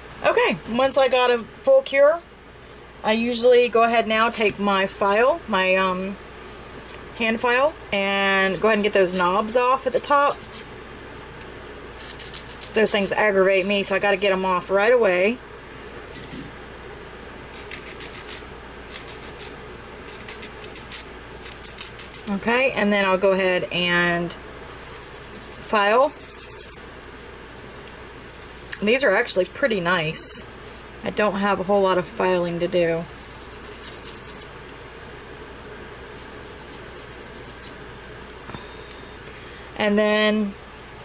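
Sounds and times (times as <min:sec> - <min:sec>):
nail file rasping on nails: 0:08.6 - 0:10.7, 0:12.0 - 0:14.5, 0:16.1 - 0:16.5, 0:17.5 - 0:19.5, 0:20.1 - 0:22.3, 0:24.7 - 0:26.8, 0:28.3 - 0:29.5, 0:32.8 - 0:34.5, 0:36.0 - 0:37.7.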